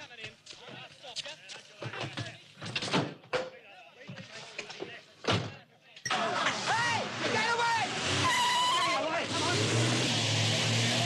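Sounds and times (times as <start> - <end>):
car engine starting and pulling away: 6.2 - 11.0
high squealing tones: 8.2 - 9.2.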